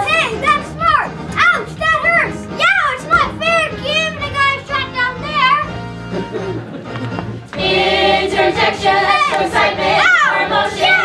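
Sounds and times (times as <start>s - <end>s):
backing music: 0.0s - 11.0s.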